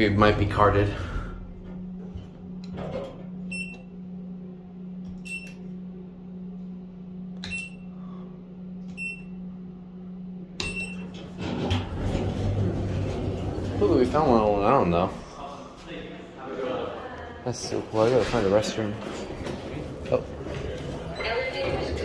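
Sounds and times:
low hum in elevator car: 0:00.0 - 0:15.8
elevator button beeps: 0:03.5 - 0:04.0, 0:05.1 - 0:05.6, 0:07.4 - 0:07.9, 0:08.9 - 0:09.4, 0:10.6 - 0:11.2.

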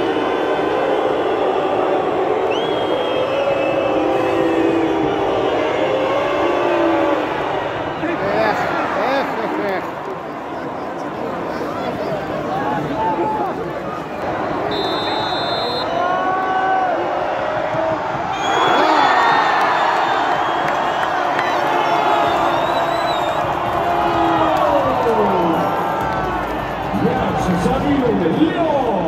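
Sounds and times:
fans shouting and whooping: 0:00.0 - 0:10.5, 0:11.9 - 0:29.0
stadium crowd cheering: 0:00.0 - 0:29.0.

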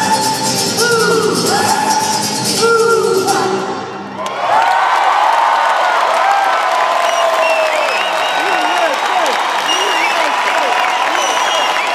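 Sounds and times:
crowd cheering and applauding: 0:04.0 - 0:11.9.

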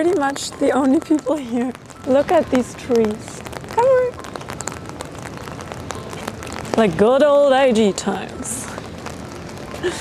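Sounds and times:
rain on wet pavement: 0:00.0 - 0:10.0.

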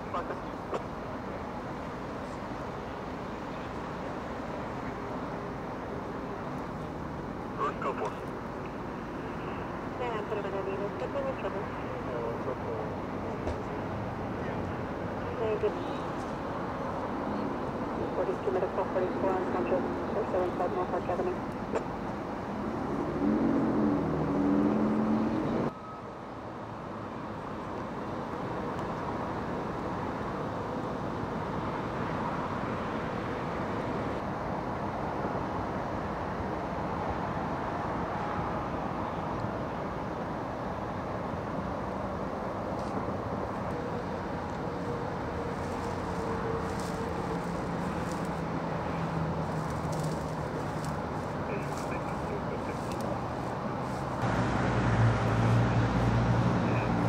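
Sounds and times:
faint engine hum: 0:00.0 - 0:57.0
hiss of passing vehicles: 0:00.0 - 0:57.0.

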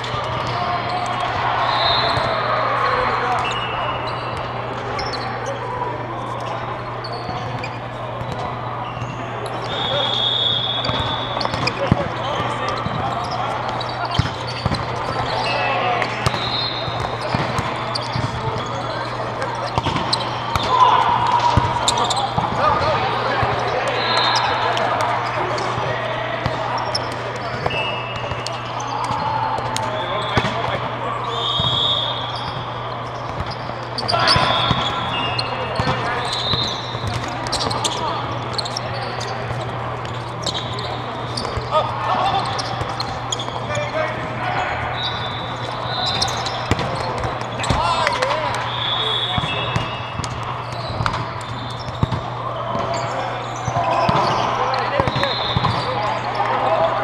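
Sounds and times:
people talking: 0:00.0 - 0:57.0
sneakers squeaking on court: 0:00.0 - 0:57.0.

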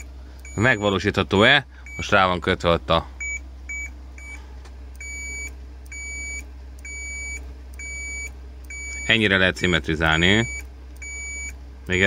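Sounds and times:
multimeter continuity beeps: 0:00.0 - 0:01.1, 0:01.8 - 0:02.3, 0:03.2 - 0:04.4, 0:05.0 - 0:12.0
steady low hum: 0:00.0 - 0:12.0.

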